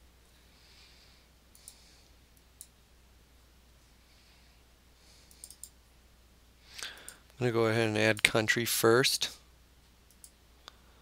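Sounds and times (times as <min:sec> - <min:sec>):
computer mouse clicking: 0:01.5 - 0:01.8, 0:05.2 - 0:05.8, 0:10.1 - 0:10.8.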